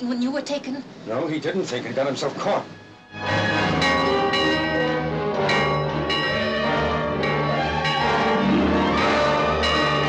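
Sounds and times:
large bell ringing: 3.3s - 10.0s.

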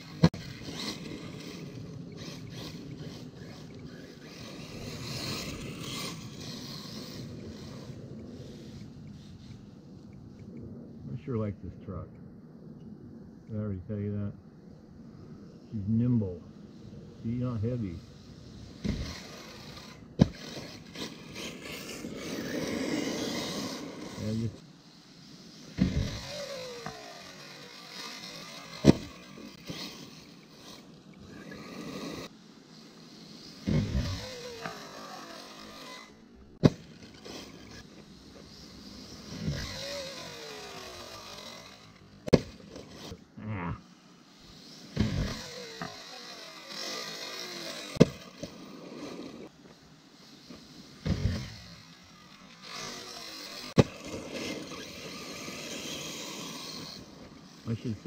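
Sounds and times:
electric motor whine: 0.0s - 10.6s, 16.9s - 58.0s
tyres scrabbling on gravel: 18.7s - 24.7s, 50.5s - 58.0s
toy car landing knocks: 36.6s - 37.4s, 42.3s - 43.0s.

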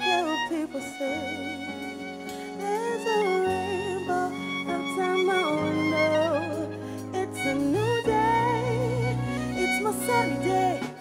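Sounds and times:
bowed violin melody: 0.0s - 11.0s
keyboard notes: 0.0s - 11.0s.

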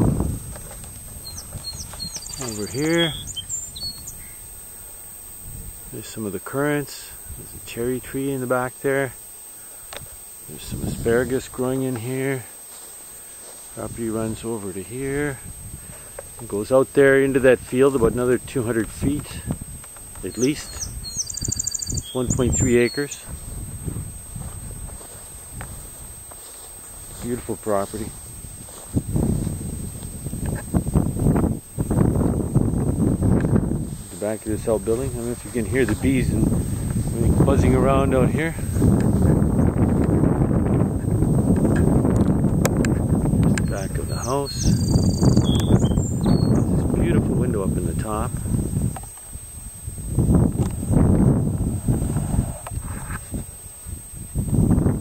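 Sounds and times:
footsteps through grass: 0.0s - 54.0s
grass rustling and brushing: 0.0s - 55.0s
faint bird chirp: 1.2s - 4.5s, 20.2s - 23.2s, 43.5s - 46.8s
low rumbling noise: 49.5s - 55.0s.

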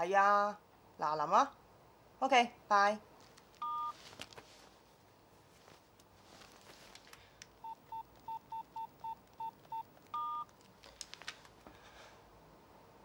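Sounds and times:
phone keypad beeps: 3.6s - 3.9s, 7.6s - 10.5s.

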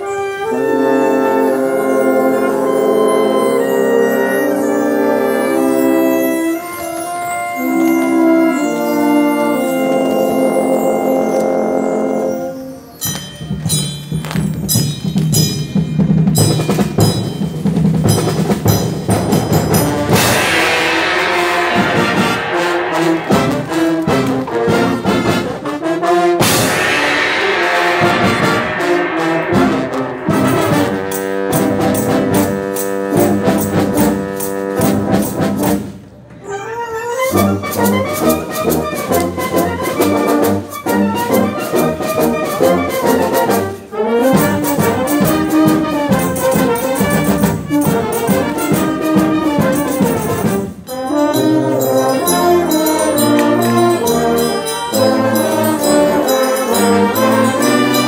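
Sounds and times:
brass band playing: 0.0s - 13.0s, 16.0s - 36.1s, 36.8s - 58.0s
cymbal crashes: 18.1s - 25.7s, 26.4s - 33.7s.

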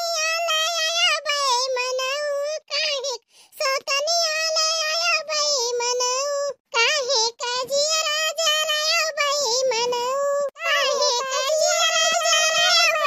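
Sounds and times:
high-pitched cartoon voice singing: 0.0s - 13.0s
short breaths: 3.2s - 3.6s.

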